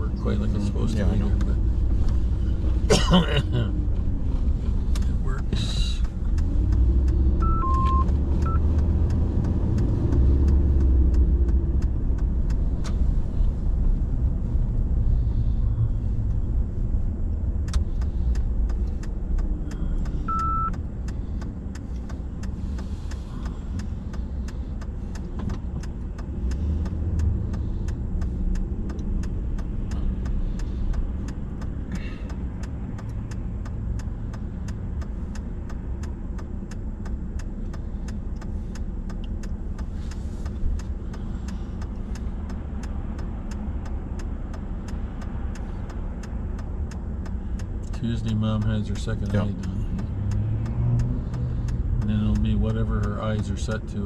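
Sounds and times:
car engine and road rumble: 0.0s - 54.0s
short beep: 7.4s - 8.6s, 20.3s - 20.7s.

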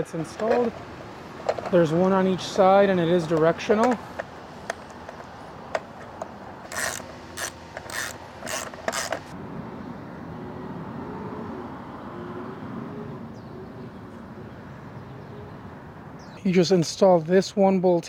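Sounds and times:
sharp metal clicks: 3.3s - 9.3s
metal rasping strokes: 5.9s - 9.3s.

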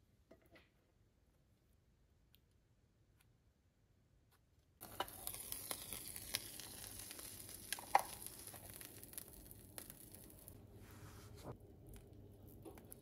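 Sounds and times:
sandwich sizzling in press: 4.8s - 10.8s.

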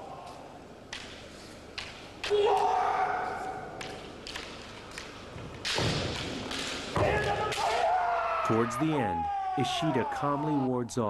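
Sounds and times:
bamboo swords clacking: 0.3s - 8.1s
long shout: 2.3s - 3.7s, 7.0s - 10.8s.

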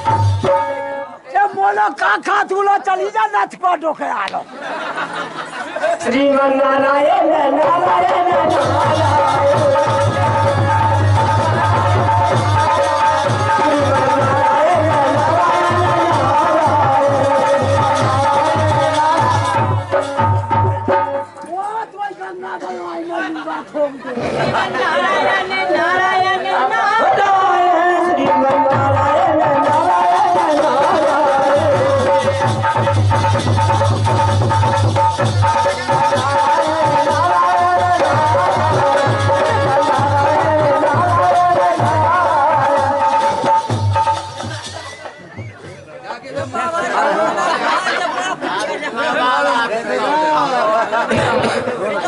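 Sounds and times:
voices chattering: 0.9s - 28.7s, 44.1s - 52.0s
voices talking loudly: 19.8s - 27.9s, 44.4s - 52.0s.

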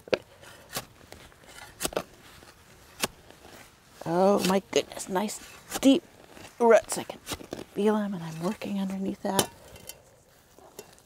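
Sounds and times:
digging tool chopping into soil: 1.6s - 2.2s, 2.9s - 3.2s.

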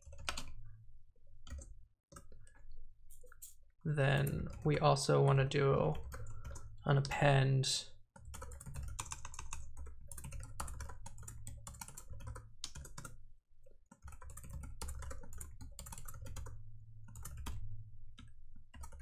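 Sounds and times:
computer keyboard typing: 0.0s - 0.6s, 1.4s - 3.5s, 4.2s - 4.7s, 5.9s - 6.8s, 8.2s - 13.2s, 13.9s - 17.6s, 18.2s - 19.0s.

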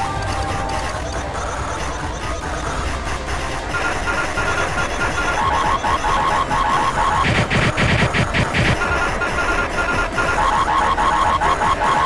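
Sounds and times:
distorted noisy wash: 0.0s - 12.0s.

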